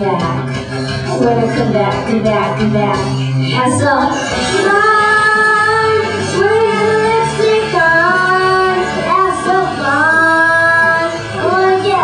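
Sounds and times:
backing music: 0.0s - 12.0s
girl singing into a microphone: 2.3s - 12.0s.

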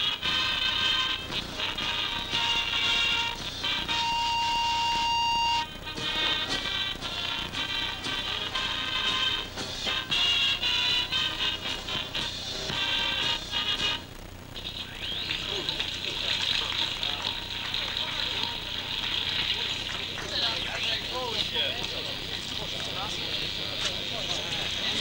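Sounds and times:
music: 0.0s - 25.0s
outdoor crowd chatter: 0.0s - 25.0s.

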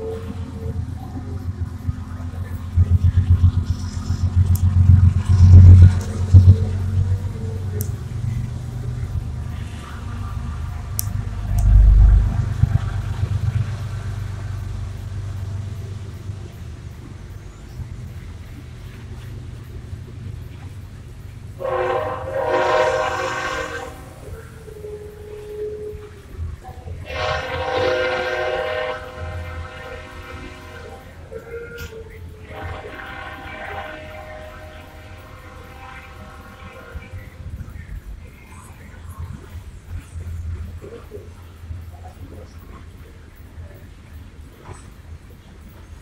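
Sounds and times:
locomotive horn blasts: 0.0s - 1.2s, 21.6s - 26.2s, 27.0s - 37.6s
low engine rumble: 0.0s - 46.0s.

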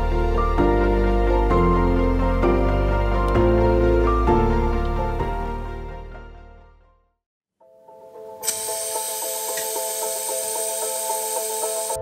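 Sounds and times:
background music: 0.0s - 12.0s
air hissing from tyre valve: 8.4s - 12.0s.

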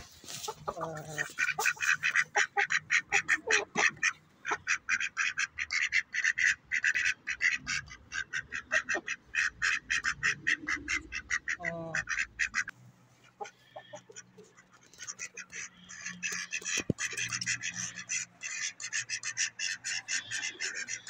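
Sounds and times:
caged birds chirping harshly: 0.0s - 21.0s.

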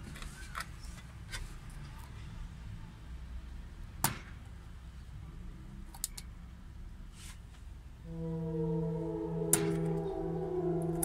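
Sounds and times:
low steady rumble: 8.0s - 11.0s.

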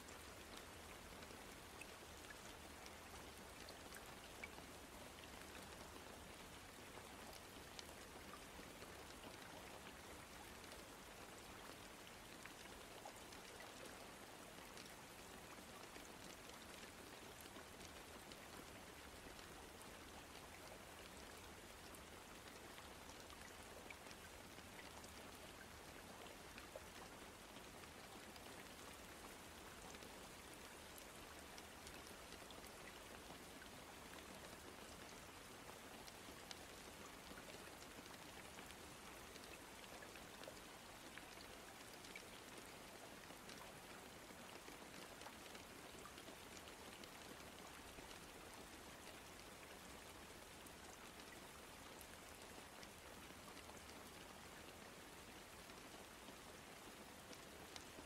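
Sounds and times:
faint steady rain hiss: 0.0s - 58.0s
rain drop ticks: 0.2s - 58.0s.

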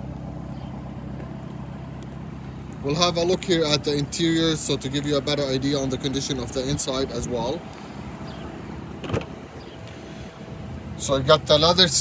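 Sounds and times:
car door latch click: 9.0s - 9.4s.

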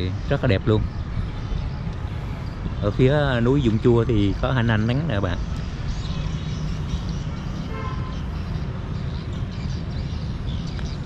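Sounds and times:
low rumble of town ambience: 0.0s - 11.0s.

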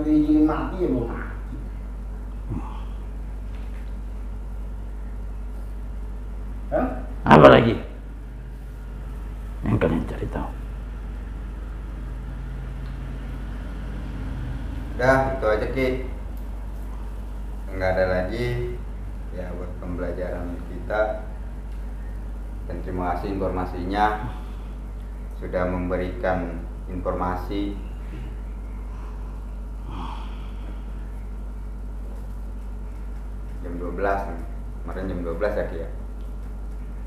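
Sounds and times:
steady low hum: 0.0s - 37.0s
breathy sound: 2.5s - 3.2s, 28.0s - 31.4s.

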